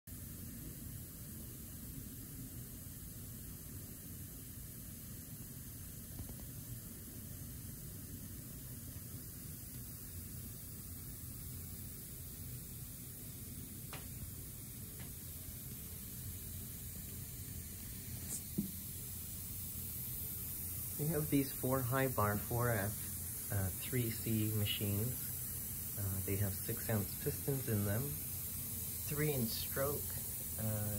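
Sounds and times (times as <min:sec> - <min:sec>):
compressed air hiss: 0:00.1 - 0:30.9
low hum: 0:14.1 - 0:30.9.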